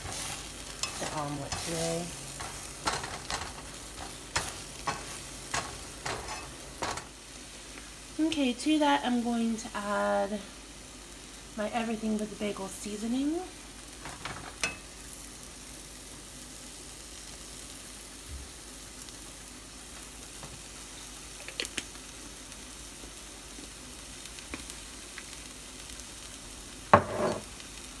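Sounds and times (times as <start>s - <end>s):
eggs sizzling in a frying pan: 0.0s - 28.0s.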